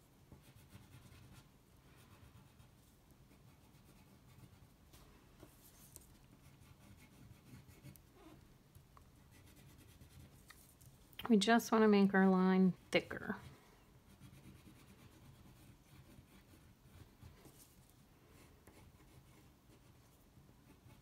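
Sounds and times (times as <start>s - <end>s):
crayon scratching on paper: 0.4s - 4.7s, 5.5s - 8.4s, 9.1s - 10.7s, 13.0s - 21.0s.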